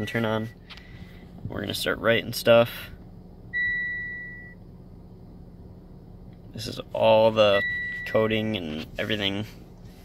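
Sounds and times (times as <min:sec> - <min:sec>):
electronic warning chime: 0:07.5 - 0:08.3.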